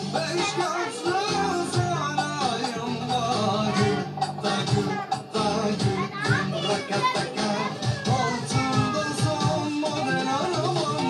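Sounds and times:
background music: 0:00.0 - 0:11.0
children chattering: 0:00.0 - 0:11.0.

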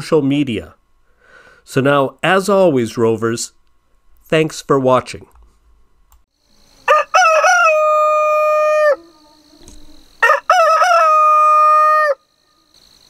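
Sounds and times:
rooster crowing: 0:06.7 - 0:12.7.

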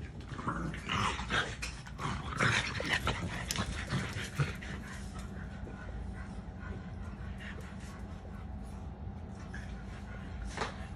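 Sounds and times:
dogs playing rough: 0:00.0 - 0:10.9.

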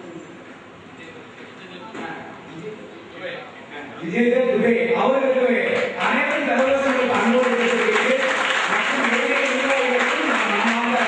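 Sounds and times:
man's voice: 0:04.0 - 0:11.0
crowd applauding: 0:05.8 - 0:11.0.

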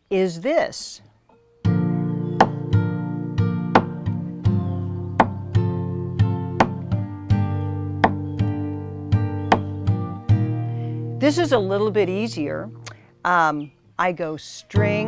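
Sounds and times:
acoustic guitar strumming: 0:01.4 - 0:13.2, 0:14.7 - 0:15.0
thumb slaps on guitar strings: 0:02.4 - 0:02.8, 0:03.7 - 0:05.6, 0:06.6 - 0:07.0, 0:08.0 - 0:08.5, 0:09.5 - 0:10.4.

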